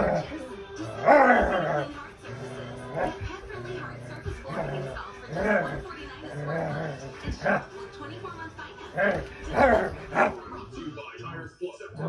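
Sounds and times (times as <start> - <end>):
dog growl-bark: 0.0 - 7.7, 8.9 - 10.5.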